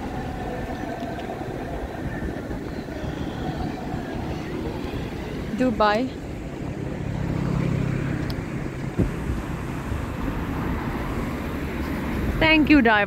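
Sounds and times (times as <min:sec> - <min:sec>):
vehicles driving past: 0:00.0 - 0:13.0
wind buffeting microphone: 0:00.0 - 0:13.0.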